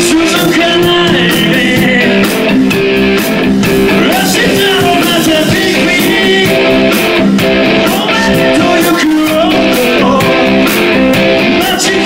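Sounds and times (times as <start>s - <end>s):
electric guitar: 0.0s - 12.0s
live rock band playing: 0.0s - 12.0s.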